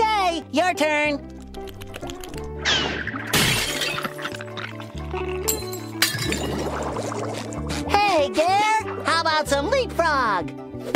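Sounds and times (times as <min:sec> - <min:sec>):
light background music: 0:00.0 - 0:10.9
crash with glass shattering: 0:03.3 - 0:04.2.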